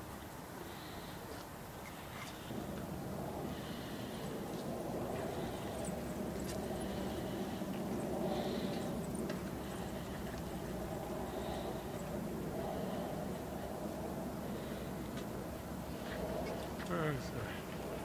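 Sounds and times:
low outdoor rumble: 0:00.0 - 0:18.0.

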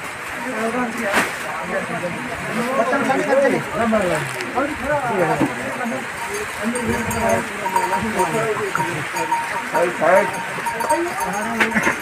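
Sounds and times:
people talking at once: 0:00.3 - 0:12.0.

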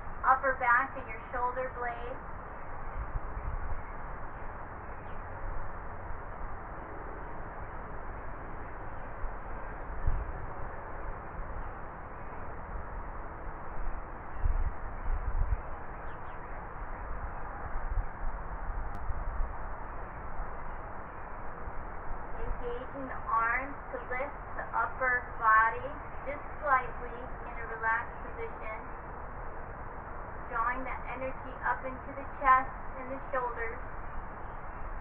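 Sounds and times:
steady outdoor hiss: 0:00.0 - 0:35.0.

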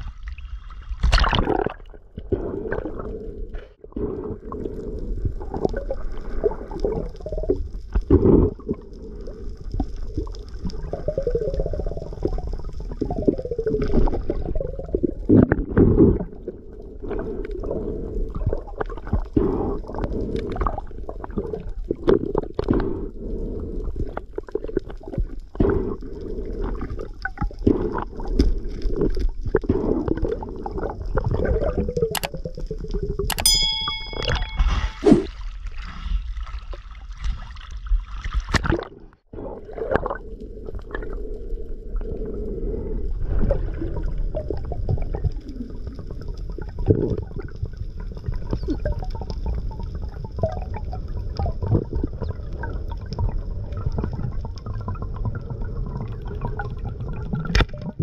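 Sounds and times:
muffled underwater rumble: 0:00.0 - 0:58.0
ringing tone: 0:33.3 - 0:35.3.

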